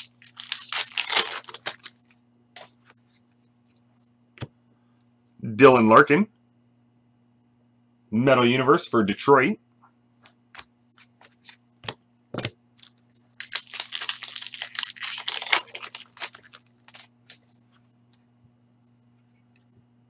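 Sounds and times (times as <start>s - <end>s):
foil wrapper crinkling: 0.0s - 2.9s, 12.8s - 17.8s.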